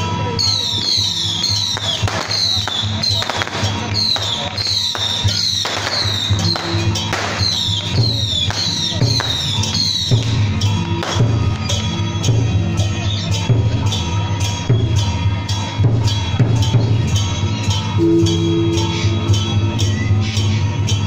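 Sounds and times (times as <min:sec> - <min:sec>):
procession music with bass beat: 0:05.6 - 0:21.0
falling high tone: 0:18.0 - 0:19.8.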